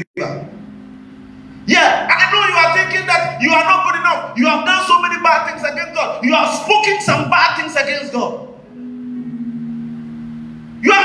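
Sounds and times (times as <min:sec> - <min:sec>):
speech: 0:00.0 - 0:00.5, 0:01.7 - 0:08.5
held low musical chord: 0:00.0 - 0:11.0.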